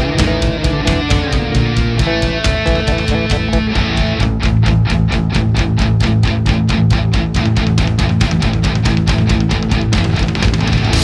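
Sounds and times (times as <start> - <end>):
drums playing fast beat: 0.0 - 11.0
electric guitar: 0.0 - 11.0.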